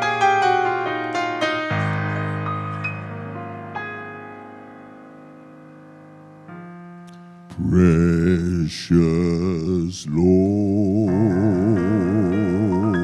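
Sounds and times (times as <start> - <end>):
keyboard chords: 0.0 - 13.0
man singing with vibrato: 7.5 - 13.0.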